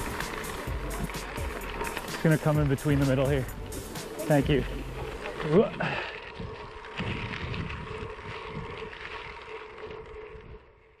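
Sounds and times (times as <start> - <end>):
low rumble: 0.0 - 11.0
wind buffeting microphone: 2.4 - 10.9.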